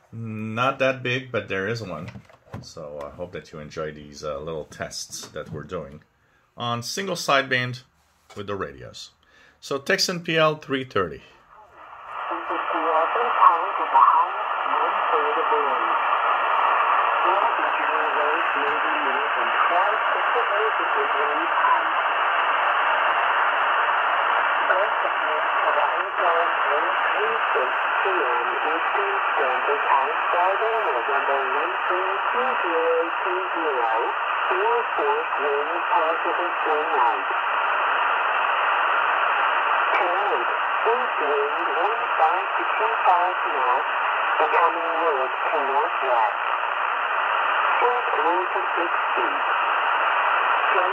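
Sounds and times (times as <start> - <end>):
radio static and hiss: 11.5 - 50.9
voice over radio: 12.2 - 16.1, 17.1 - 22.0, 24.6 - 37.5, 39.8 - 46.6, 47.6 - 49.6, 50.5 - 50.9.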